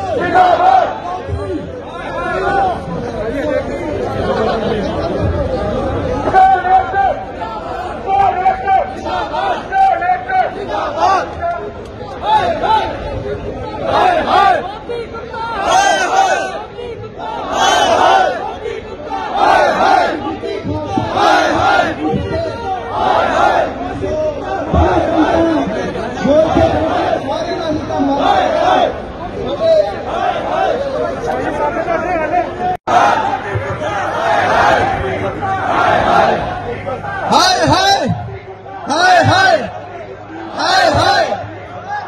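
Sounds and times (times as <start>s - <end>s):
crowd talking and shouting: 0.0s - 42.0s.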